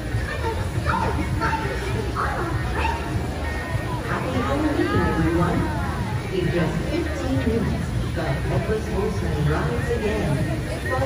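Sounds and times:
background music: 0.0s - 11.0s
crowd chatter: 0.0s - 11.0s.

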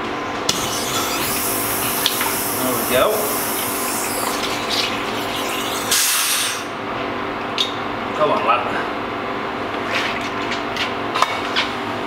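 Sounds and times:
steady low hum: 0.2s - 8.2s
water spraying through beer lines: 0.6s - 6.8s.

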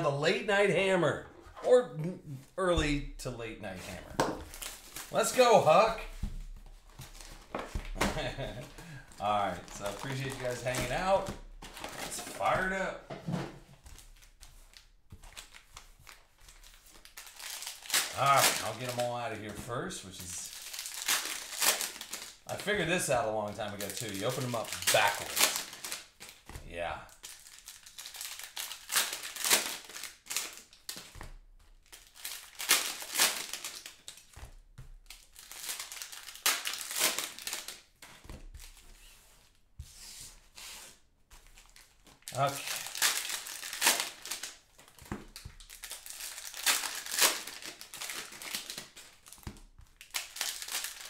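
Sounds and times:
crinkling plastic wrappers: 4.4s - 12.8s, 13.8s - 38.9s, 41.4s - 51.0s.

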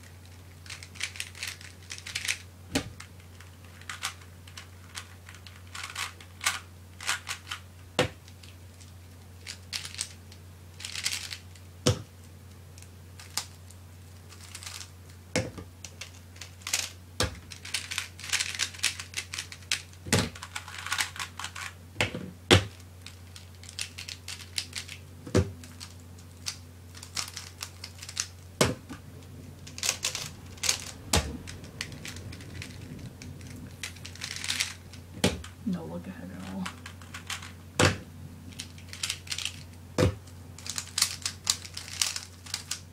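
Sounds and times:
faint low hum: 0.0s - 42.9s
puzzle cube clicking: 29.7s - 35.5s, 40.6s - 42.8s.

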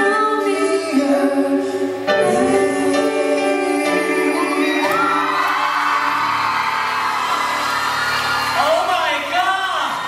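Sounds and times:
man and woman singing: 0.0s - 6.4s
band playing: 1.7s - 9.8s
audience whooping and screaming: 4.4s - 10.0s.

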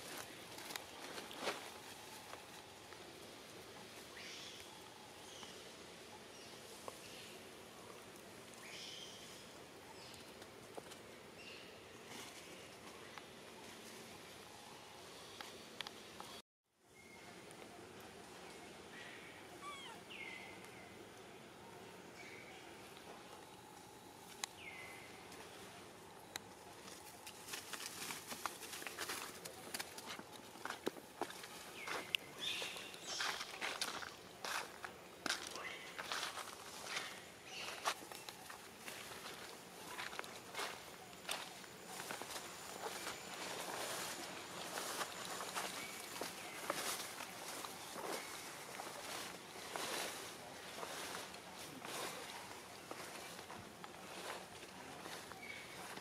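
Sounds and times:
footsteps crackling through undergrowth: 0.0s - 5.5s, 22.2s - 56.0s
macaque high-pitched calls: 19.5s - 20.1s.

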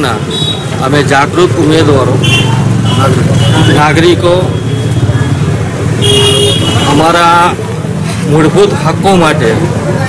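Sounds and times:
street traffic noise: 0.0s - 10.0s
vehicle horn beep: 6.0s - 7.0s.

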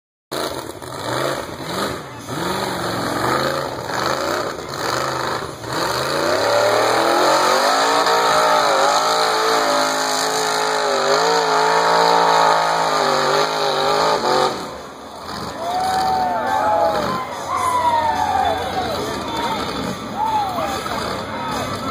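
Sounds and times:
off-road vehicle engine revving: 0.3s - 21.9s.

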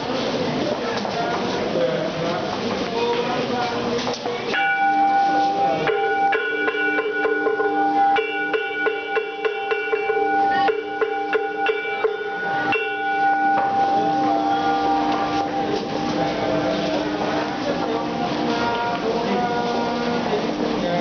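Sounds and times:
metallic bell-like percussion: 4.5s - 20.3s.

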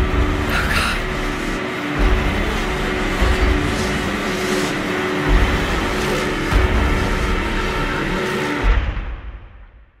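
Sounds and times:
dense noisy wash: 0.0s - 9.0s.

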